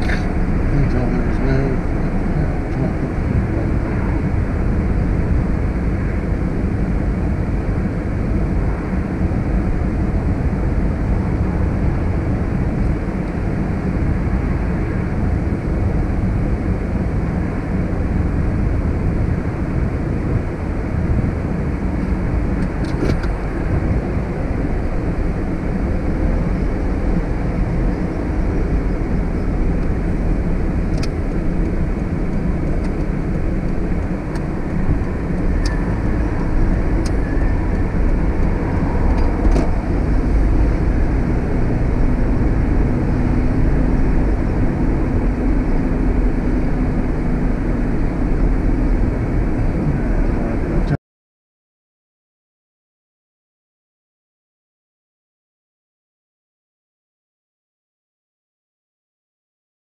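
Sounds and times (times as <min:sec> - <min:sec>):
car engine rumble: 0:00.0 - 0:51.0
road noise: 0:00.0 - 0:51.0.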